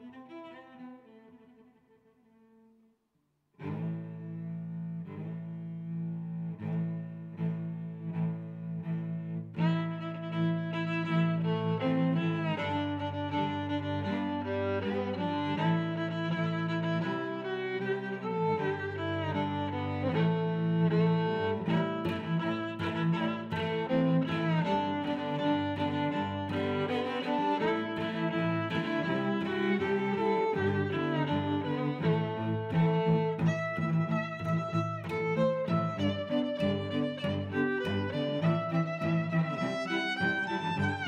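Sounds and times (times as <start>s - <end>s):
bowed strings background music: 0.0s - 2.1s, 3.6s - 41.0s.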